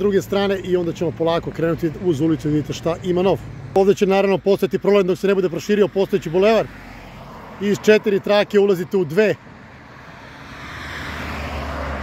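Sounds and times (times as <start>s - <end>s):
car approaching: 0.0s - 12.0s.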